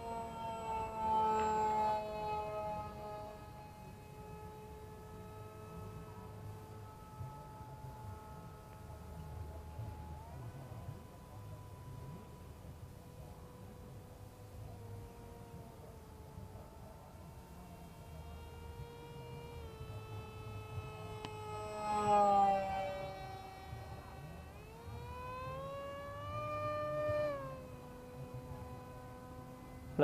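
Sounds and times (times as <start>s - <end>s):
electric motor and propeller whining: 0.0s - 30.0s.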